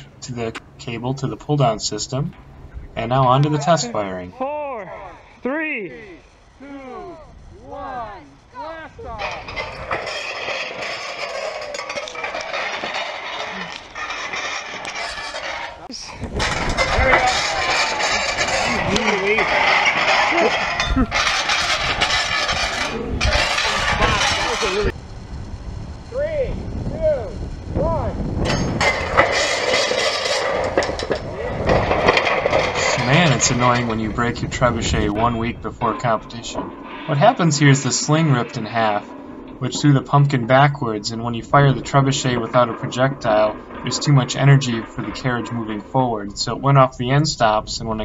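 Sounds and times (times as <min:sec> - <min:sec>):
people's voices: 0:00.0 - 0:13.9, 0:15.8 - 0:25.0, 0:32.7 - 0:48.0
loud noisy rumble: 0:07.3 - 0:47.2.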